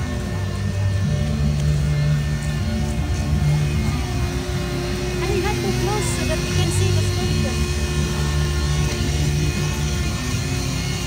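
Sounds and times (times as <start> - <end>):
background music: 0.0 - 11.0
electric tool cutting ice: 0.0 - 11.0.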